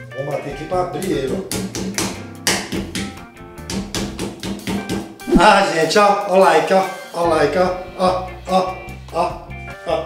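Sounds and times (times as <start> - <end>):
background music: 0.0 - 10.0
rolling pin pounding meat: 1.0 - 5.5.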